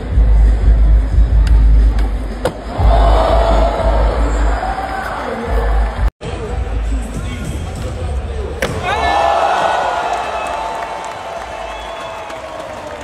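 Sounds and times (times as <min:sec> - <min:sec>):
arena music with heavy bass: 0:00.0 - 0:09.0
crowd cheering: 0:08.7 - 0:13.0.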